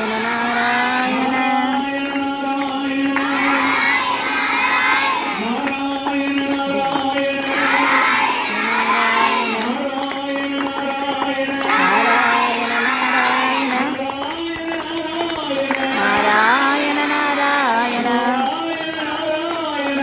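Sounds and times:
children singing together: 0.0s - 10.0s, 11.5s - 14.0s, 15.8s - 18.4s.

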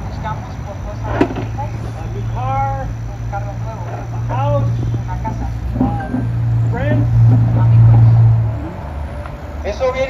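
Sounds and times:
person speaking: 0.0s - 8.8s
vehicle engine drone: 0.0s - 10.0s.

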